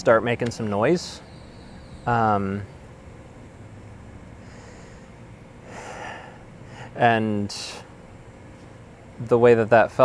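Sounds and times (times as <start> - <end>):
man speaking: 0.0 - 1.2, 2.1 - 2.7, 7.0 - 7.9, 9.2 - 10.0
man breathing: 4.4 - 7.0.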